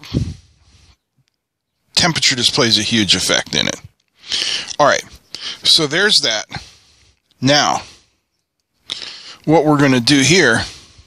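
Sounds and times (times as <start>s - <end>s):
man speaking: 2.0s - 8.0s, 8.9s - 10.8s.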